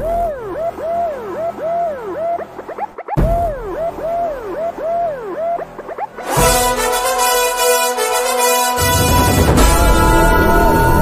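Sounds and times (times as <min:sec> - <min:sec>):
siren-like wailing tone: 0:00.0 - 0:02.5, 0:03.2 - 0:11.0.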